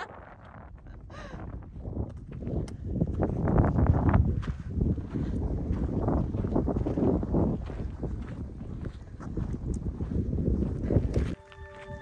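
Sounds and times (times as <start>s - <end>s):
wind buffeting microphone: 0.0s - 11.4s.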